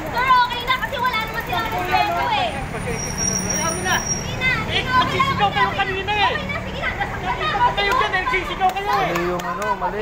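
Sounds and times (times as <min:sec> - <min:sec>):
people's voices: 0:00.0 - 0:10.0
vehicle engine humming: 0:00.0 - 0:10.0.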